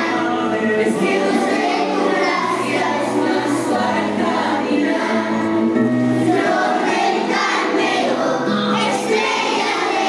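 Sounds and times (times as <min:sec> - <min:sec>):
children singing a hymn: 0:00.0 - 0:10.0.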